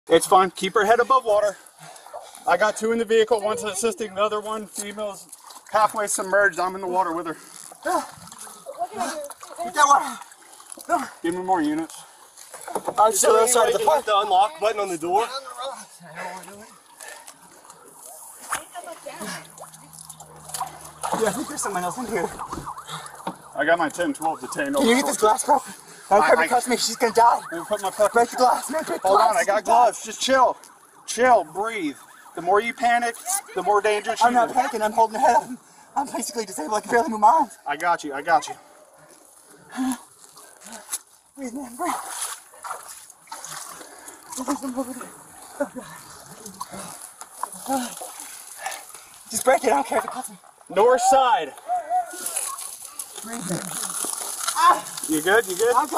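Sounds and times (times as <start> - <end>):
water sloshing and splashing: 1.1 - 2.5, 3.6 - 37.2, 38.6 - 50.7, 52.1 - 55.9
urgent voices: 7.2 - 36.8.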